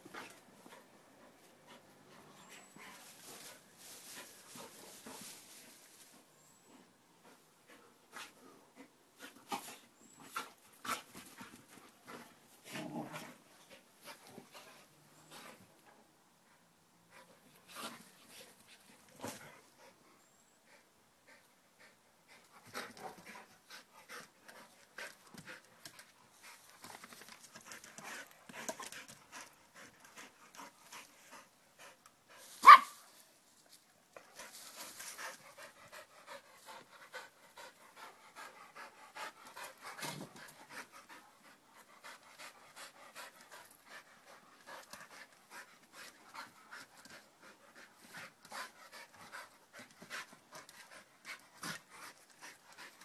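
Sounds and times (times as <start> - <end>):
leaves rustling: 2.8 - 6.3
dog barking: 32.6 - 33.0
dogs panting: 34.2 - 53.0.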